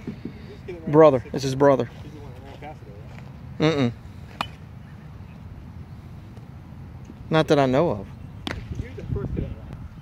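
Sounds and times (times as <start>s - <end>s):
bat cracking a ball: 8.4s - 8.8s.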